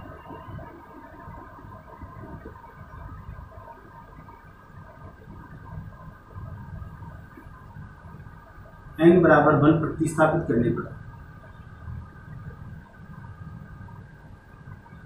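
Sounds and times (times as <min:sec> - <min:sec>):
faint electrical hum: 0:00.0 - 0:15.0.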